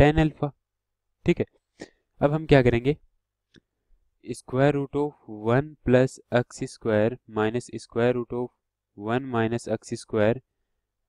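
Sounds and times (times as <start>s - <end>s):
man speaking: 0.0s - 0.6s, 1.2s - 1.6s, 2.2s - 3.0s, 4.2s - 10.5s.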